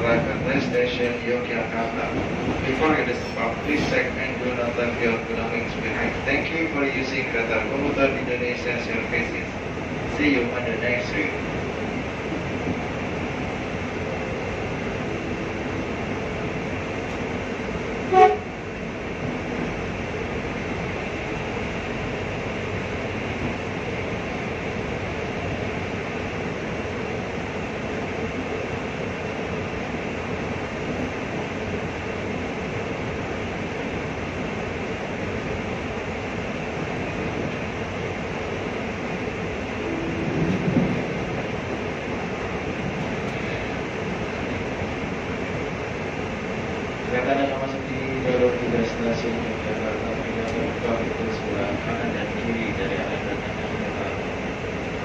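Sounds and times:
train rumbling on track: 0.0s - 55.0s
train horn blast: 18.0s - 18.6s, 39.9s - 41.2s.

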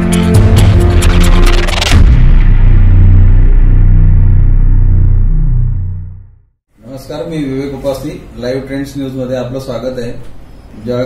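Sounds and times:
deep bass rumble: 0.4s - 6.5s.

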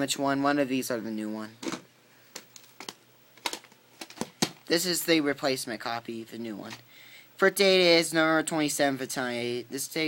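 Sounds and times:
plastic tape cases clicking: 2.4s - 4.7s.

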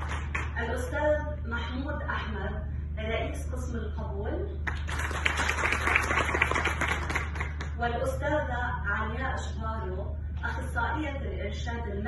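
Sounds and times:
audience applause: 4.8s - 7.6s.

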